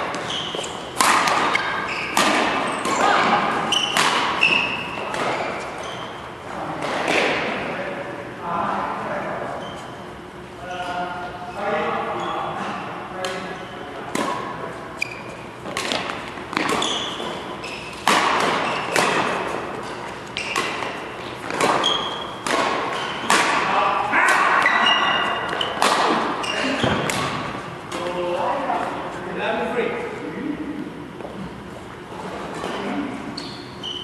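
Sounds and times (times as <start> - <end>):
rackets hitting shuttlecock: 0.1 - 5.8, 15.5 - 28.3.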